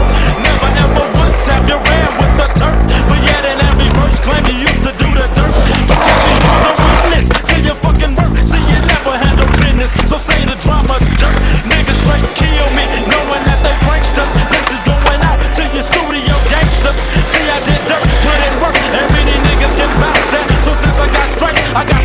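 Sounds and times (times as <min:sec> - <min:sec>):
music with heavy bass: 0:00.0 - 0:22.0
skateboard wheels rolling on asphalt: 0:00.0 - 0:22.0
skateboard clacks: 0:00.1 - 0:22.0.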